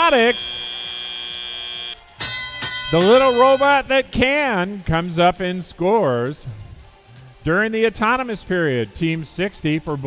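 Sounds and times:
steady buzzing tone: 0.0 - 4.1
ringing bell-like tone: 1.6 - 4.0.

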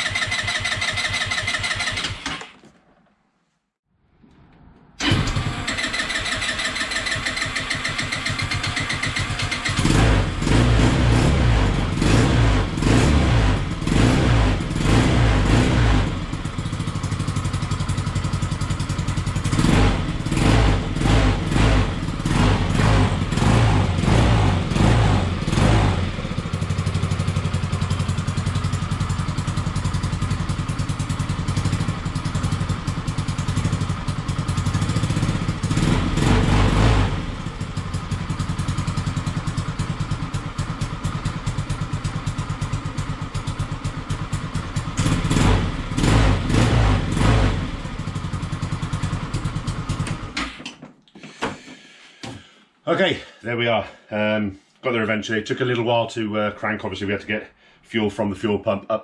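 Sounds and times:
scooter engine revving and idling: 0.0 - 2.6, 5.0 - 50.6.

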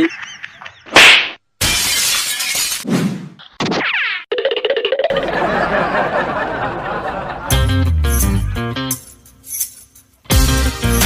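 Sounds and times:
cartoon shattering crash: 1.0 - 3.9.

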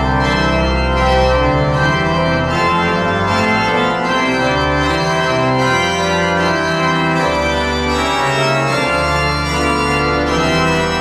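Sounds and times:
pipe organ chords: 0.0 - 11.0.

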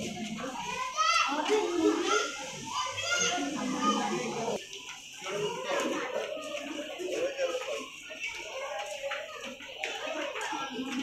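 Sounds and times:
children's excited cries: 0.0 - 4.6
children talking and calling out: 0.0 - 11.0.

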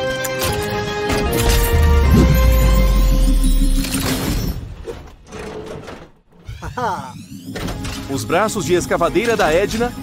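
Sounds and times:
background music: 0.0 - 10.0
rising electronic glide: 1.7 - 4.3.

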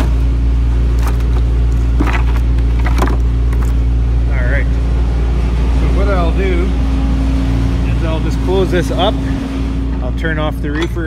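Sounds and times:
refrigeration unit droning: 0.0 - 11.0.

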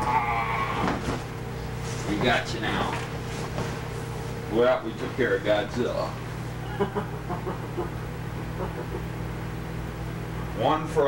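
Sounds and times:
person's high wavering cry: 0.0 - 0.9
steady low hum: 0.0 - 11.0.

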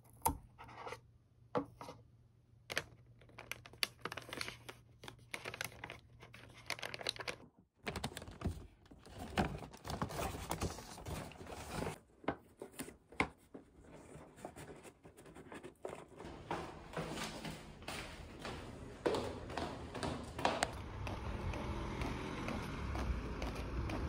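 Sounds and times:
paper and cardboard rustling: 4.0 - 18.4.

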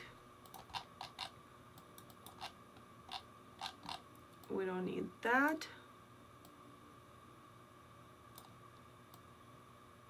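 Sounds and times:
computer mouse clicks: 0.4 - 2.5.

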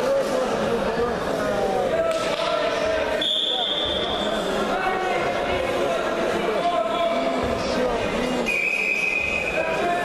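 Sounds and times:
voices of people: 0.0 - 10.0
referee's whistle: 3.2 - 4.1, 8.4 - 9.6.

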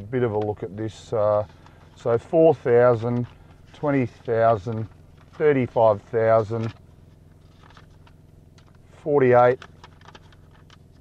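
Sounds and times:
low steady hum: 0.0 - 11.0
paper pages turning: 3.0 - 6.8, 7.4 - 8.8, 9.4 - 11.0.

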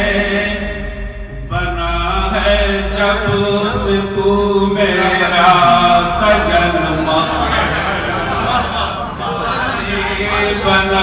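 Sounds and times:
man singing through microphone: 0.0 - 0.8, 1.4 - 7.8, 9.4 - 11.0.

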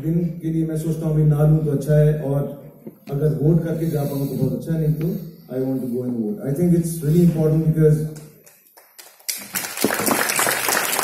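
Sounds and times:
audience applause: 8.8 - 11.0.

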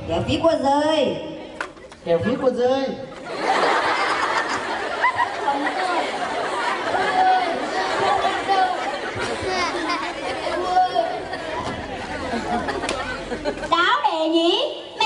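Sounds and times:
many voices chattering: 1.0 - 15.0.

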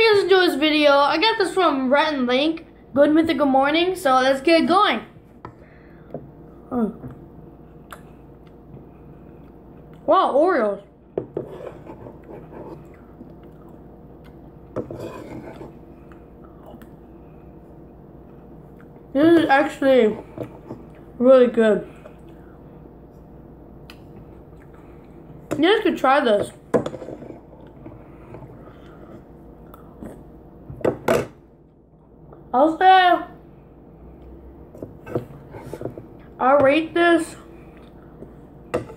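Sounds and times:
person chewing: 12.2 - 14.7, 23.8 - 25.4, 28.5 - 30.4
metal spoon scraping ceramic bowl: 14.8 - 15.7.

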